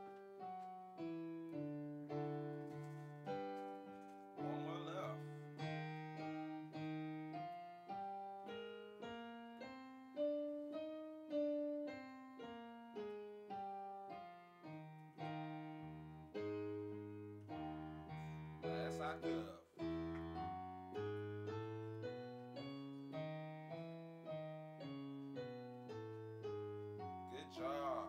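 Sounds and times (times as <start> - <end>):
keyboard piano chords: 0.0 - 28.0.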